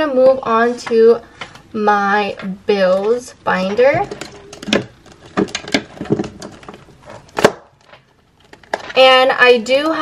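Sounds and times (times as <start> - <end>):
plastic binder clicks and knocks: 4.0 - 9.0.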